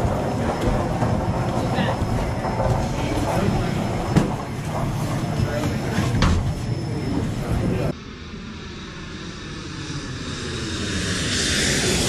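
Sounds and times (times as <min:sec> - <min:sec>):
indistinct voices: 0:00.0 - 0:10.2
steady low rumble: 0:00.0 - 0:12.0.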